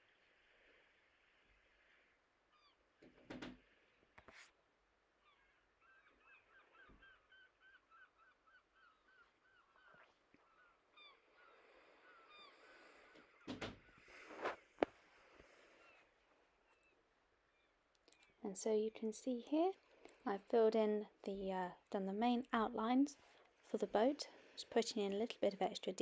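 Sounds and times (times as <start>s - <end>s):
faint high bird calls: 1.9s - 3.0s, 5.2s - 14.3s, 15.5s - 18.4s.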